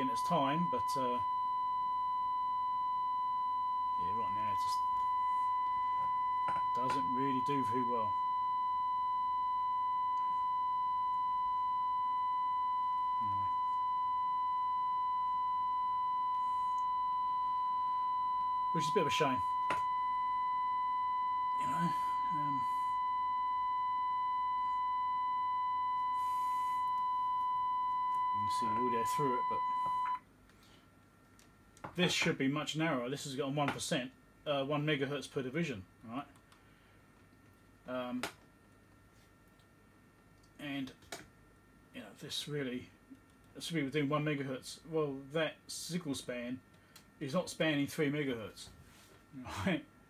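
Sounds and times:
steady electronic test tone: 0:00.0 - 0:30.2
faint high whine: 0:00.0 - 0:30.9.

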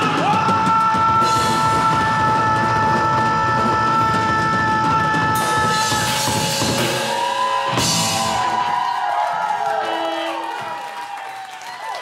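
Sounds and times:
live rock band: 0:00.0 - 0:10.9.

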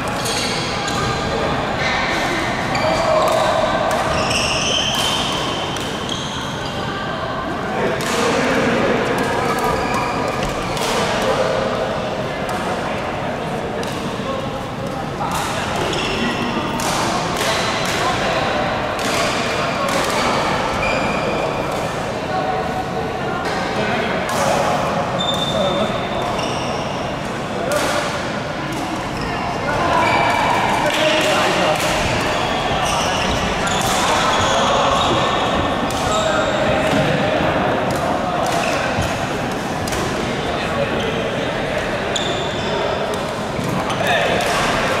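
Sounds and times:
murmur of voices: 0:00.0 - 0:45.0
shoe squeaks on court floor: 0:02.7 - 0:05.4, 0:06.0 - 0:06.8, 0:09.6 - 0:10.5, 0:25.2 - 0:27.1, 0:32.2 - 0:36.6, 0:42.1 - 0:42.9.

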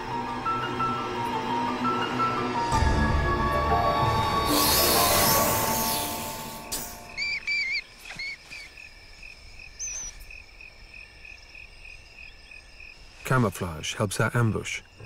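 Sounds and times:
background music: 0:00.0 - 0:07.2
insects chirping: 0:00.0 - 0:15.0.

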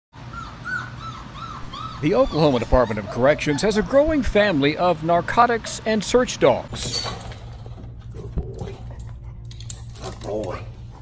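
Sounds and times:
puppies whimpering: 0:00.2 - 0:04.4.

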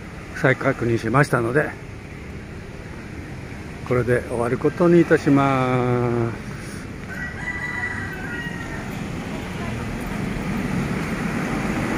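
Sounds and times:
street traffic: 0:00.0 - 0:11.9
rooster crowing: 0:07.0 - 0:09.2.

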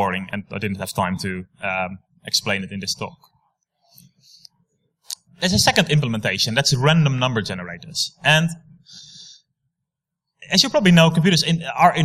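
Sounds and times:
man lecturing: 0:00.0 - 0:03.3, 0:05.1 - 0:08.8, 0:10.4 - 0:12.0.

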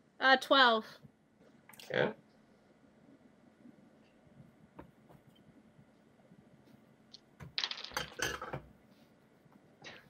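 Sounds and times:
dice clattering on table: 0:07.2 - 0:08.6.

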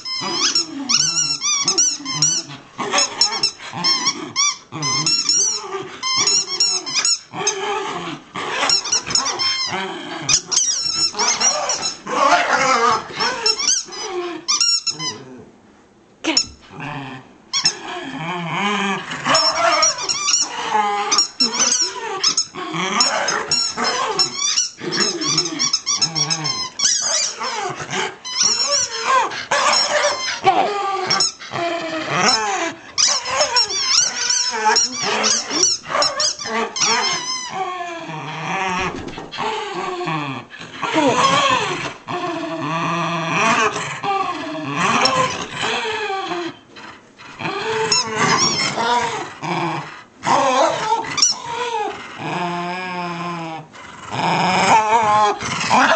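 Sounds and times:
high wavering squeaks: 0:00.0 - 0:07.3, 0:08.7 - 0:09.7, 0:10.3 - 0:15.2, 0:19.2 - 0:20.6, 0:21.2 - 0:31.4, 0:32.2 - 0:37.7
dogs growling in play: 0:00.0 - 0:15.6, 0:16.4 - 0:55.9.

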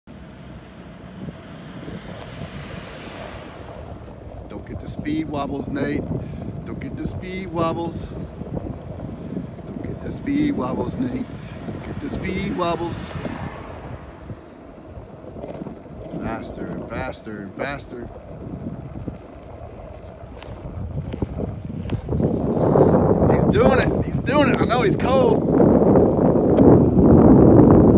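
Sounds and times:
wind buffeting microphone: 0:00.1 - 0:27.9.

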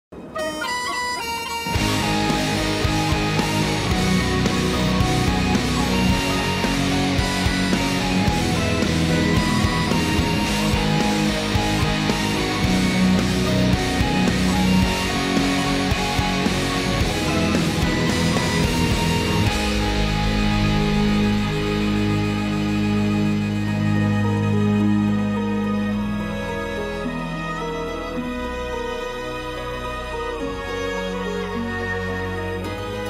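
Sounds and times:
drums: 0:00.1 - 0:24.6
distorted electric guitar: 0:00.1 - 0:31.4
bagpipe-like melody: 0:00.2 - 0:33.0.

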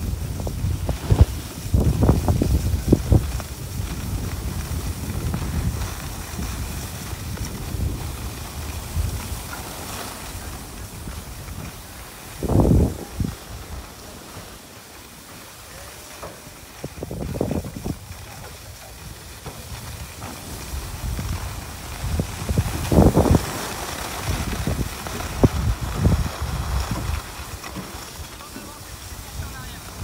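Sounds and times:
wind buffeting microphone: 0:00.0 - 0:14.5, 0:16.7 - 0:28.2
skis hissing over snow: 0:00.0 - 0:30.0.

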